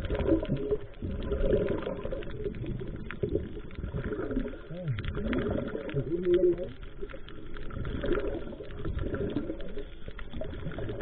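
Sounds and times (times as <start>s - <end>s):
underwater bubbles gurgling: 0.0s - 11.0s.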